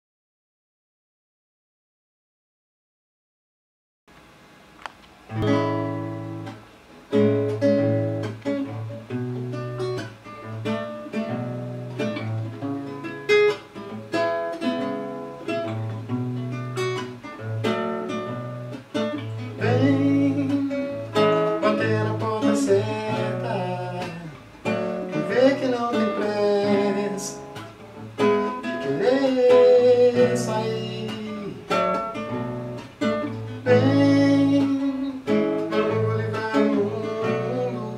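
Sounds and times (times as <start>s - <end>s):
classical guitar fingerstyle: 4.8s - 37.9s.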